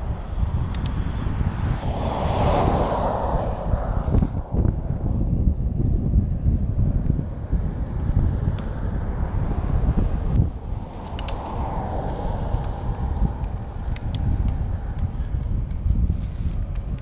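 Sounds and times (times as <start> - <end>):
vehicle passing: 0.0 - 16.7
highway traffic: 0.0 - 17.0
wind buffeting microphone: 0.0 - 17.0.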